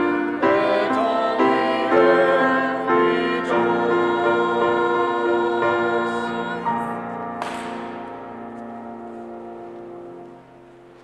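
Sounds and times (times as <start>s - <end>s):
congregation and choir singing hymn: 0.0s - 11.0s
instrumental accompaniment: 0.0s - 11.0s.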